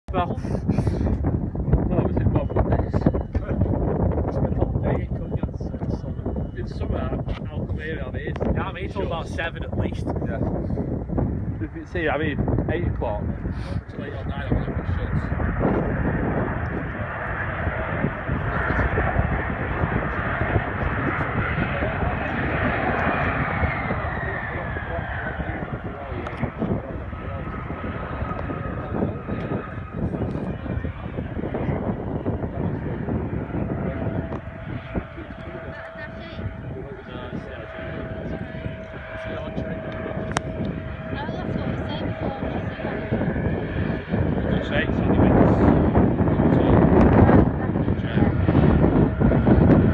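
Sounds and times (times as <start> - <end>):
jet engines whining: 0.1 - 49.9.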